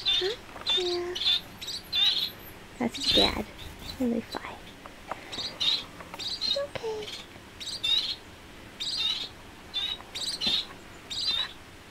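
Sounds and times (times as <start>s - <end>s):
finches chirping: 0.0s - 11.6s.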